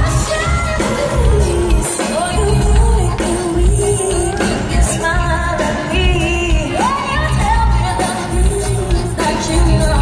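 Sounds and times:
live pop concert music: 0.0 - 10.0.

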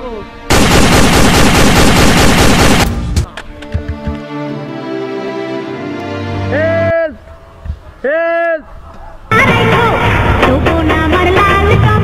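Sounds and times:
automatic gunfire: 0.5 - 3.2.

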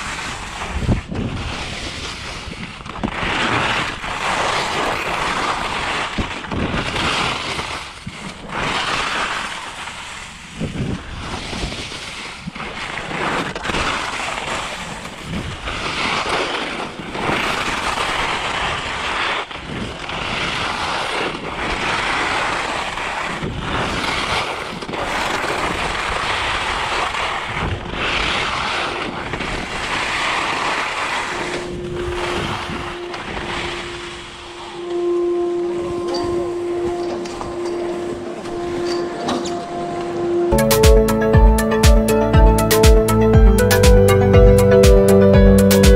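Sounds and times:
wind buffeting microphone: 0.0 - 8.9, 23.2 - 40.4
skis scraping over snow: 0.0 - 34.4
steady humming tone: 31.2 - 45.6.

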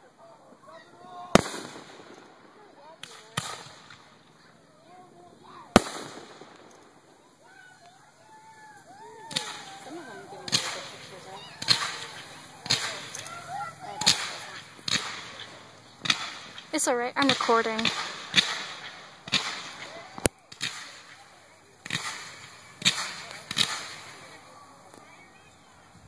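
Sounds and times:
fireworks cracking: 0.0 - 26.0.

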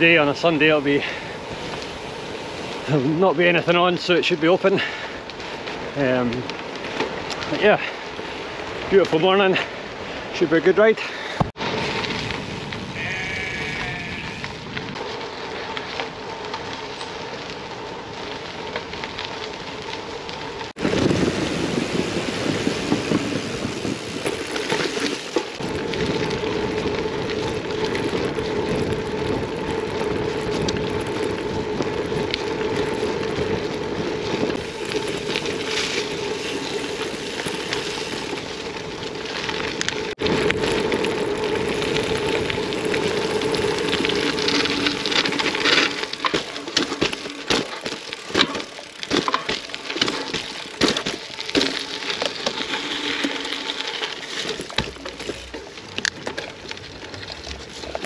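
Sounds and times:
bike tyres crunching on gravel: 0.0 - 58.0.

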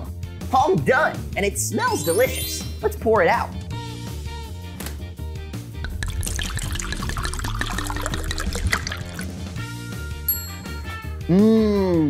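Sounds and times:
background music: 0.0 - 12.0
smoothie pouring into glass: 5.8 - 9.7.

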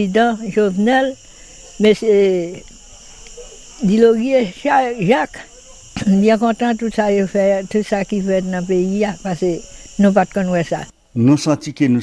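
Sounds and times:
high-pitched insect chirring: 0.0 - 11.1.

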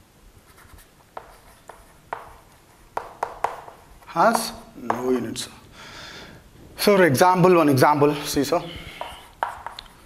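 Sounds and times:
chalk scratching on blackboard: 0.5 - 5.0, 8.8 - 10.0
chalk tapping on board: 0.6 - 5.2, 8.9 - 10.0.

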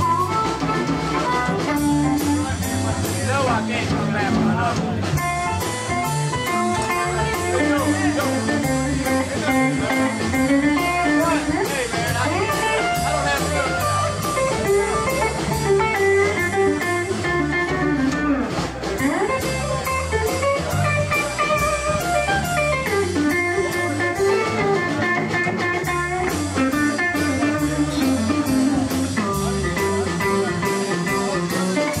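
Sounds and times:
electric guitar lead lines: 0.0 - 3.7, 5.2 - 32.0
drum kit cymbal beat: 0.0 - 32.0
electric bass: 0.0 - 32.0.

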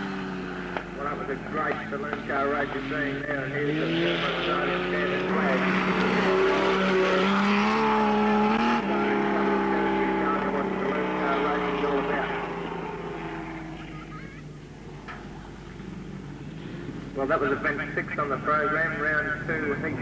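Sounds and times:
racing car engine running hard: 0.0 - 20.0.

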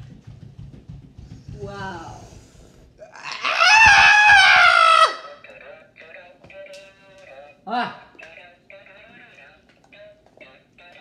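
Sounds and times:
person screaming: 3.0 - 5.4.

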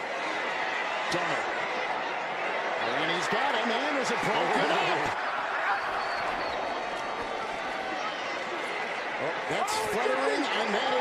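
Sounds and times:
stadium crowd noise: 0.0 - 11.0.

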